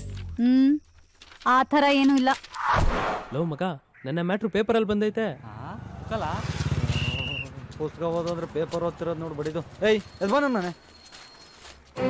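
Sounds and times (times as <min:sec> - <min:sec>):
vehicle engine running: 0:05.8 - 0:10.2.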